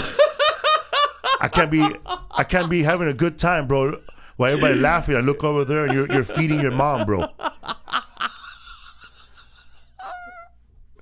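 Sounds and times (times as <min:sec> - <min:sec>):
man laughing hard: 0:00.0 - 0:03.0, 0:04.5 - 0:10.4.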